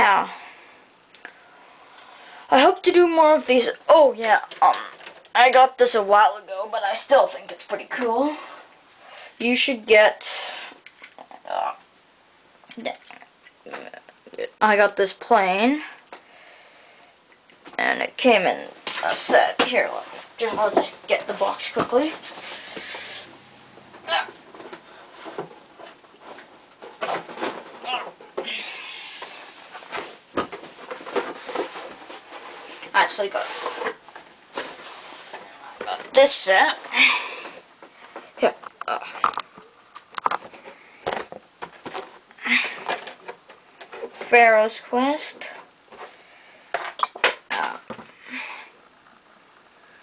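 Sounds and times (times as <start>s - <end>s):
rustling: 18.7s - 44.4s.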